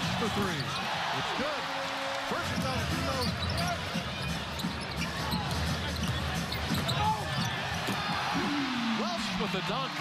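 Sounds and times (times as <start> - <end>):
sneakers squeaking on hardwood: 3.2 - 8.1.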